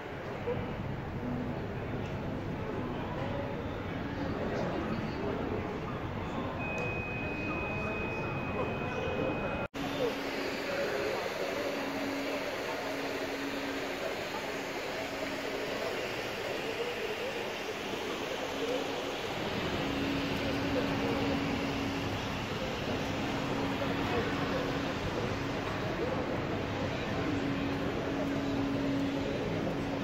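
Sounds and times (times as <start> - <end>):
steady background hum: 0.0 - 30.0
indistinct voices: 3.0 - 30.0
thin high tone: 6.2 - 26.4.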